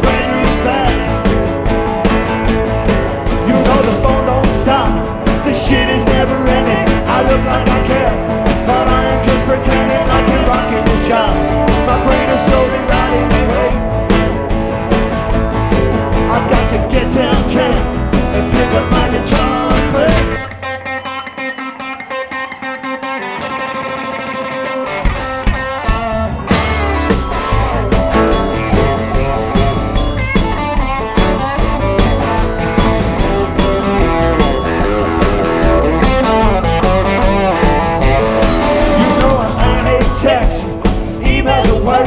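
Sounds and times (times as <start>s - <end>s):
electric guitar: 0.0s - 42.0s
live rock band playing: 0.0s - 42.0s.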